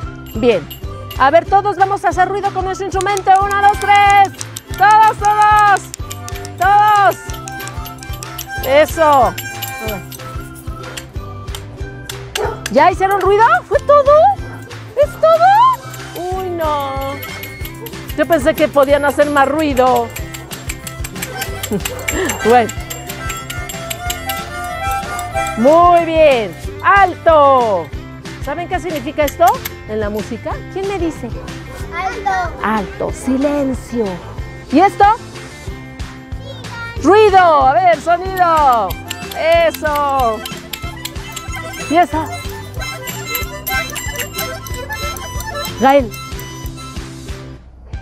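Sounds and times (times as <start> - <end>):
percussion clicks and rattles: 0.0 - 31.2, 37.0 - 47.1
reedy wind instruments: 12.4 - 27.4, 38.8 - 47.3
reedy wind instrument tones: 22.1 - 27.0.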